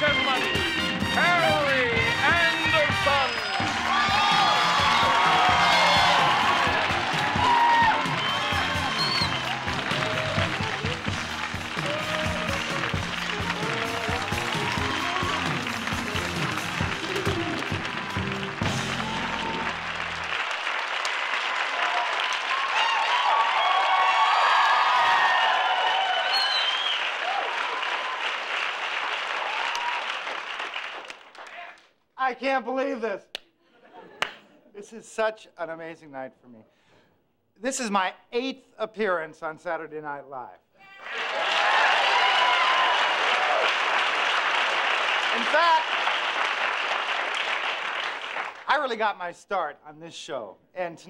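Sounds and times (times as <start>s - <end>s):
live band playing: 0.0s - 20.3s
audience applauding and cheering: 0.0s - 32.0s, 40.8s - 48.7s.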